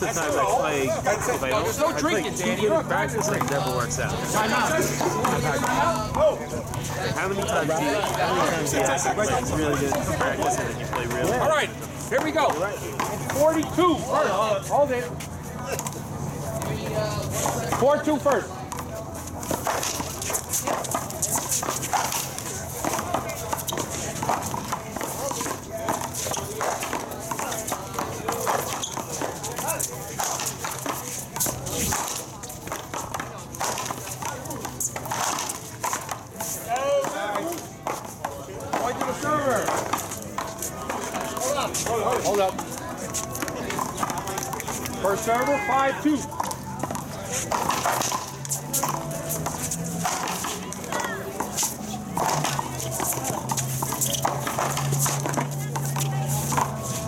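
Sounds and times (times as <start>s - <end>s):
ball hit with paddles: 2.5s - 13.9s, 16.6s - 57.0s.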